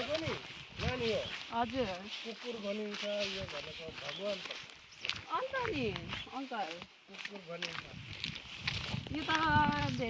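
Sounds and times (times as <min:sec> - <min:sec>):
people talking: 0:00.0 - 0:04.6, 0:05.3 - 0:08.0, 0:09.1 - 0:10.0.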